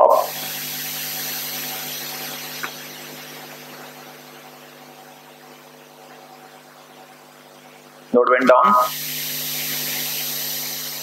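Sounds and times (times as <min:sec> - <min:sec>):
fan-like hiss: 0:00.0 - 0:05.2, 0:08.7 - 0:11.0
electrical hum: 0:00.0 - 0:11.0.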